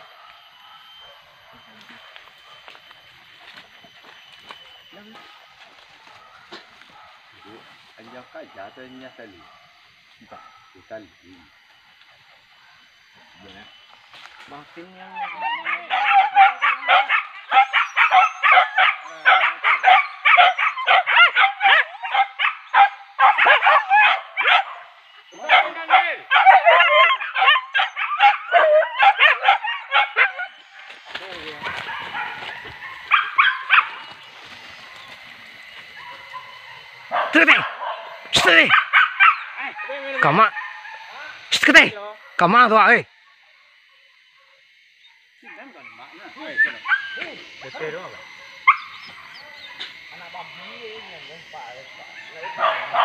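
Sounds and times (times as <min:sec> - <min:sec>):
hunting dogs yelping and baying: 0:00.0 - 0:53.0.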